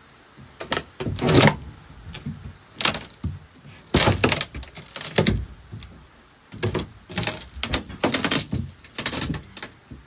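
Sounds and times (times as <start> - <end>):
boards scraping: 0.0 - 10.0
wooden boards knocking: 0.4 - 10.0.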